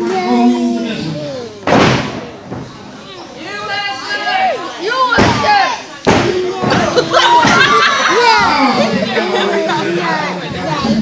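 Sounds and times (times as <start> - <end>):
spectators shouting: 3.4 - 9.9.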